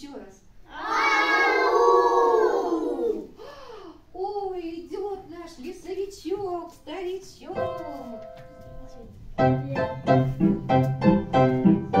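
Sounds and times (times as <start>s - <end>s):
children calling out: 0.7s - 3.4s
rhythmic piano tune: 7.6s - 12.0s.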